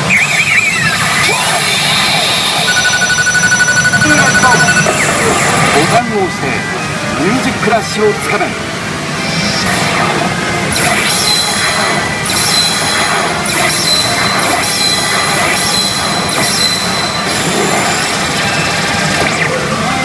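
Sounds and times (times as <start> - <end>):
bright high electronic effects: 0.0 - 6.6, 9.2 - 18.9
pachinko machine electronic music: 0.0 - 20.0
pachinko parlour din: 0.0 - 20.0.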